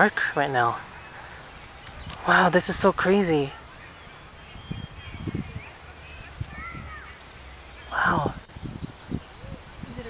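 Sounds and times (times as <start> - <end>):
faint bird chirps: 3.3 - 7.2, 7.8 - 10.0.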